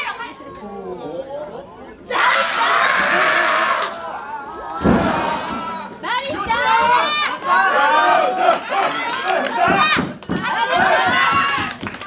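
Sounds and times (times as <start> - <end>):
crowd yelling: 2.1 - 11.8.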